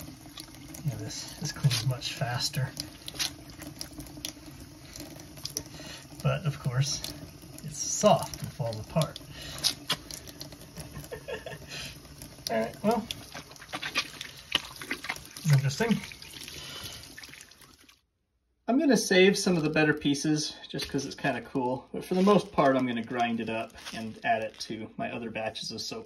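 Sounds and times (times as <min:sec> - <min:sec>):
tap water running into sink: 0:00.0 - 0:18.0, 0:22.1 - 0:24.5.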